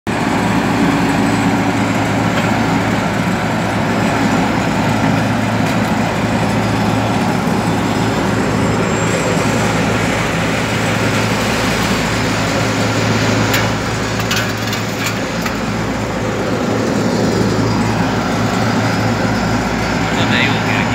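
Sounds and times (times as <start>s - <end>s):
diesel machinery engines humming: 0.1s - 20.9s.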